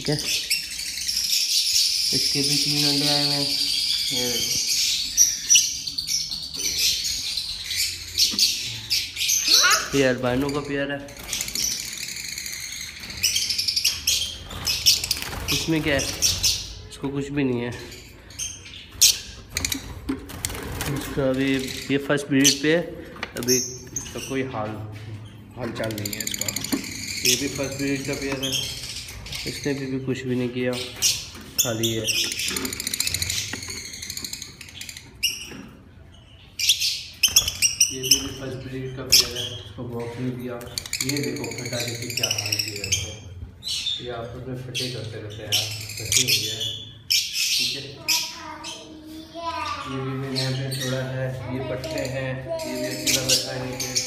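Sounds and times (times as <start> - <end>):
lovebirds chirping: 0.0 - 54.0.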